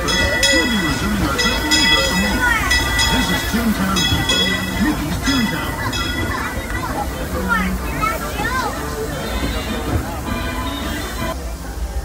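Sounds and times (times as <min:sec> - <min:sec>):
locomotive bell clanging: 0:00.0 - 0:11.4
voices of passengers: 0:00.0 - 0:12.0.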